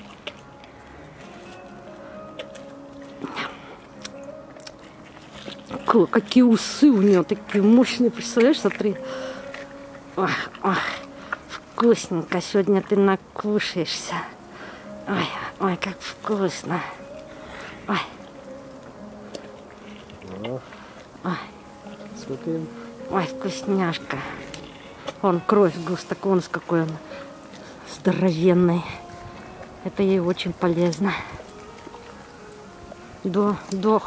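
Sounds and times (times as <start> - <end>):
tiger chewing raw meat: 0.0 - 34.0.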